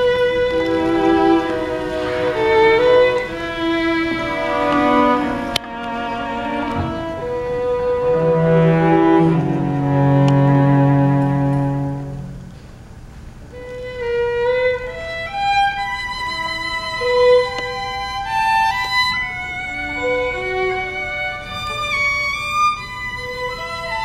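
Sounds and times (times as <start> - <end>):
solo violin melody: 0.0 - 12.6, 13.5 - 24.0
string orchestra sustained chords: 0.0 - 24.0.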